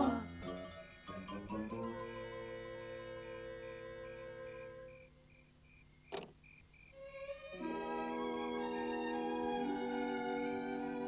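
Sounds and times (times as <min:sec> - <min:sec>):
cricket chirping: 0:00.0 - 0:07.3, 0:10.0 - 0:11.0.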